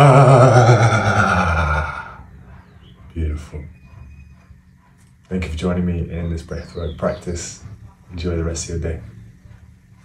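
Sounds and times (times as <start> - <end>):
man sighing loudly: 0.0 - 2.2.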